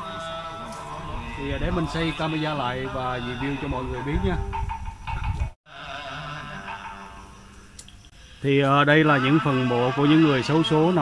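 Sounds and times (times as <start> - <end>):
sutra chanting: 0.0 - 4.5, 5.7 - 7.5, 8.3 - 11.0.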